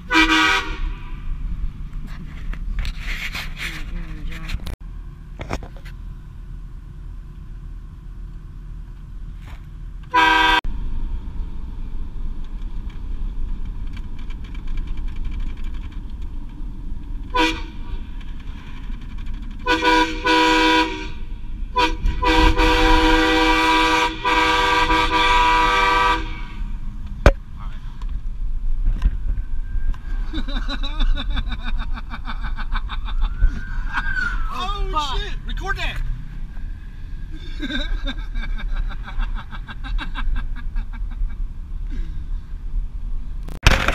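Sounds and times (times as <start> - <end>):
road noise: 0.0 - 43.9
truck engine: 0.0 - 43.9
train horn blasts: 0.1 - 1.1, 10.1 - 10.6, 17.3 - 18.0, 19.6 - 26.8.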